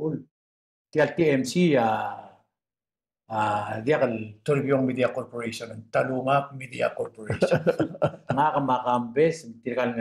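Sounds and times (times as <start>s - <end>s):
man speaking: 3.3s - 10.0s.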